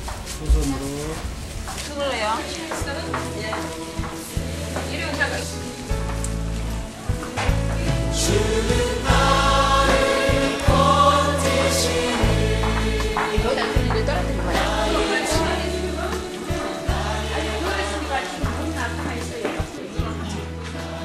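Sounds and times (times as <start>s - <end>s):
music with voices singing: 1.7s - 21.0s.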